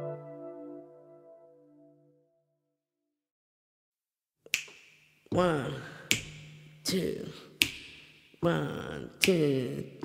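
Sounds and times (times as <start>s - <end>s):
jazz music: 0.0s - 1.8s
finger snap: 4.5s - 5.0s, 6.0s - 6.7s, 7.6s - 8.2s.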